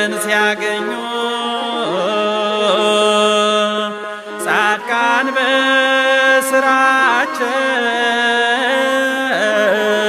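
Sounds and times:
person singing a hymn: 0.0s - 10.0s.

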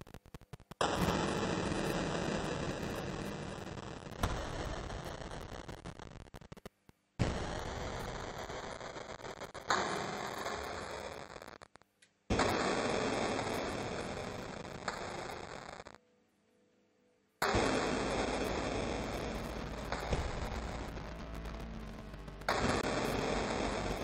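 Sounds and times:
distorted electric guitar chords: 17.5s - 24.0s.

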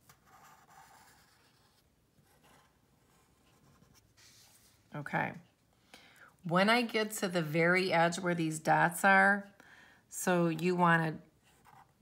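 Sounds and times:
marker scratching on paper: 0.2s - 4.7s.

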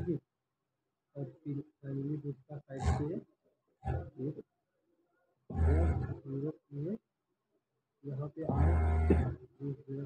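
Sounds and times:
man speaking: 0.0s - 0.2s, 1.2s - 3.2s, 4.0s - 4.4s, 5.5s - 7.0s, 8.0s - 10.0s.

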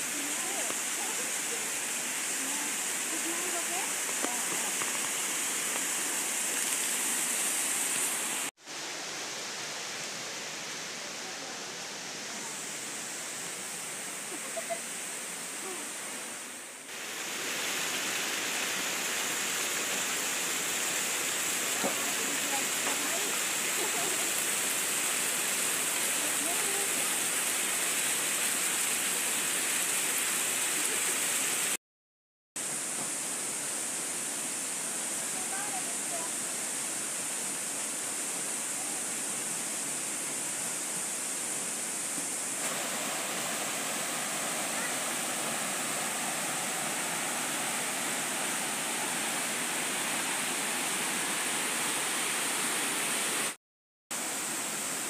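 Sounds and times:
waterfall and river rushing: 0.0s - 31.8s, 32.6s - 53.6s, 54.2s - 55.0s.

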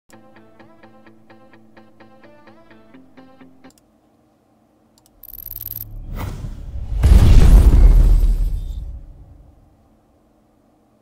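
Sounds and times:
low hum: 5.2s - 9.8s.

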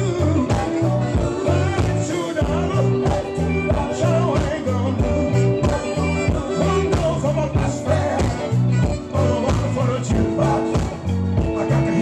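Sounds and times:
bass line: 0.0s - 12.0s
drums: 0.0s - 12.0s
electric guitar: 0.0s - 12.0s
horns: 0.0s - 12.0s
keyboard: 0.0s - 12.0s
man singing: 0.0s - 12.0s.

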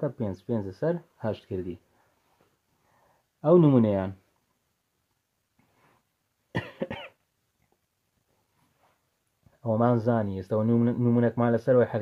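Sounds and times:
man coughing: 6.5s - 7.2s.

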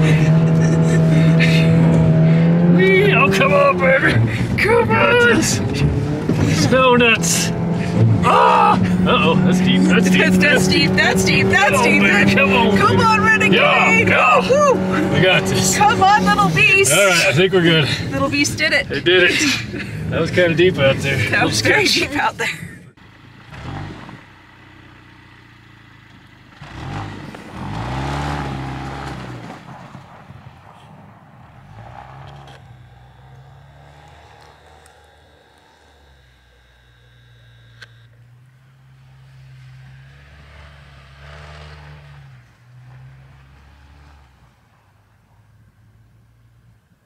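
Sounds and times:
car engine revving: 0.0s - 46.6s.

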